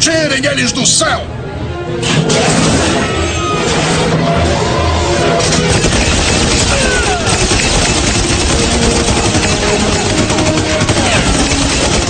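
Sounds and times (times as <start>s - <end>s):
rapid automatic gunfire: 5.4s - 12.0s.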